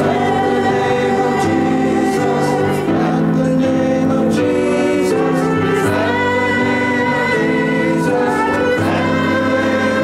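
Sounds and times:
choir singing sustained chords: 0.0s - 10.0s.

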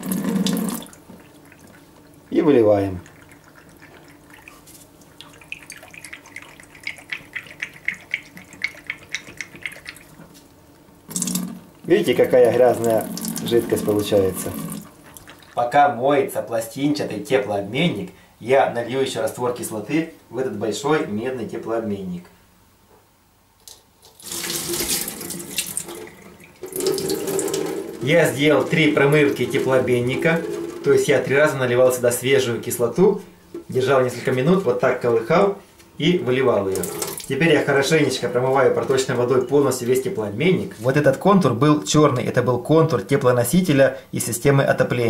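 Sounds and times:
liquid sloshing and gurgling: 3.0s - 10.4s, 24.2s - 31.2s.

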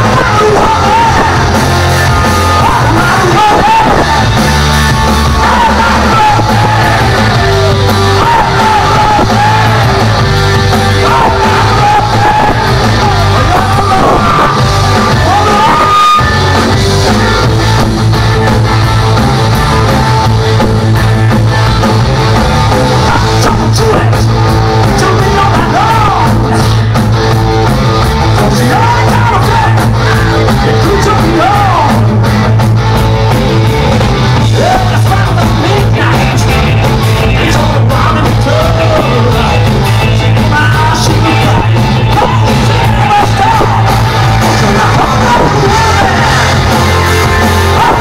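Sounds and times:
person singing and shouting: 0.0s - 17.6s, 22.8s - 26.9s, 28.3s - 32.3s, 34.4s - 48.0s
live rock band playing: 0.0s - 48.0s.

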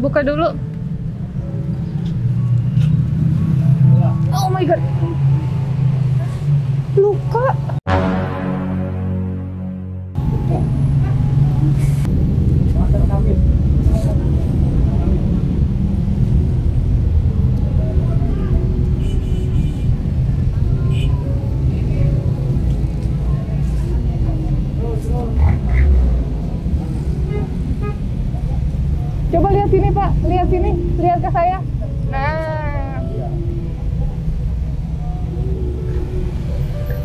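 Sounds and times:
low rumble of road traffic: 0.0s - 8.9s, 10.1s - 37.0s.

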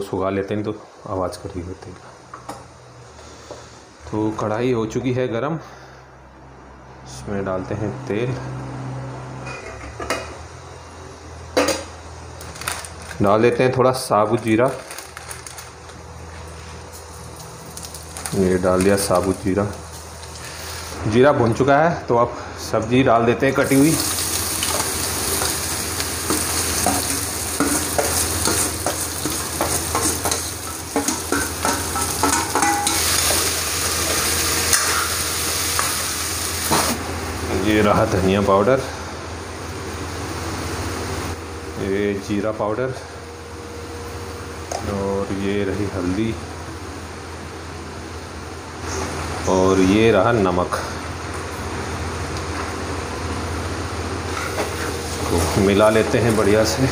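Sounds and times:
small crackles: 12.4s - 13.2s, 14.3s - 16.0s, 16.9s - 19.4s
gas burners hissing: 15.5s - 56.9s
seeds sizzling in hot oil: 23.6s - 36.9s.

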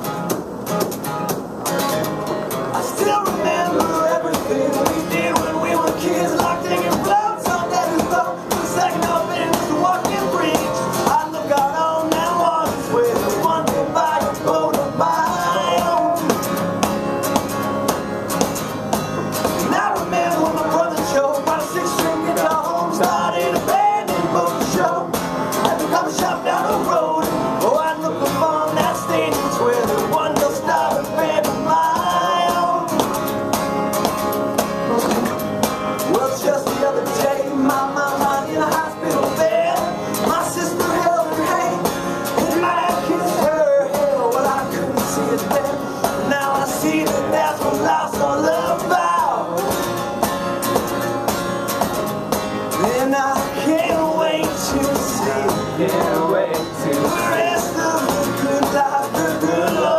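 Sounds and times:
acoustic guitar strumming: 0.0s - 59.9s
man singing: 2.7s - 16.8s, 19.0s - 33.3s, 34.8s - 50.3s, 52.7s - 59.9s.

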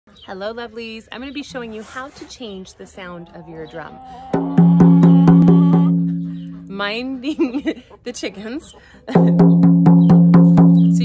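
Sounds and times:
frame drum struck: 4.4s - 6.3s.

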